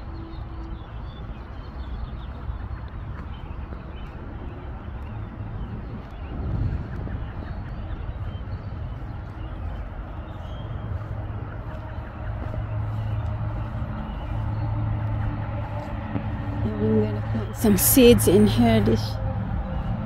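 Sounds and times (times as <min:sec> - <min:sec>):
low engine hum: 0:00.0 - 0:20.0.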